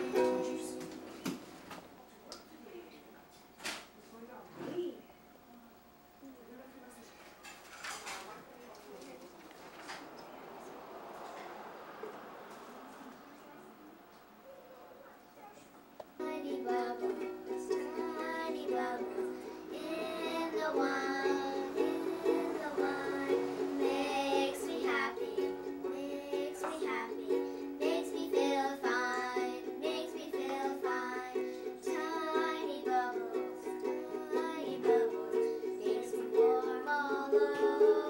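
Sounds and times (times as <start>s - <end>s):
girls singing: 0.0s - 1.4s, 16.2s - 38.0s
ukulele strumming: 0.0s - 1.9s, 16.1s - 38.0s.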